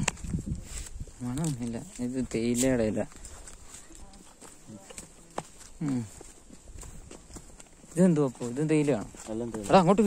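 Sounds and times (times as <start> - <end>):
footsteps on dirt trail: 0.0 - 10.0.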